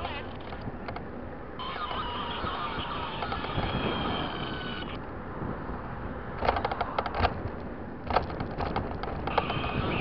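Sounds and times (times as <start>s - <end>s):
car road and engine noise: 0.0s - 10.0s
high steady whine: 1.6s - 5.1s.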